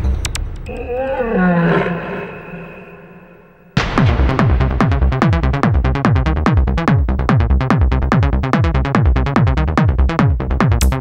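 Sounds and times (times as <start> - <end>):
roar-like sample with gliding pitch: 0.7 - 3.8
steady high synth tone: 2.0 - 3.8
pounding kick-drum beat: 3.8 - 11.0.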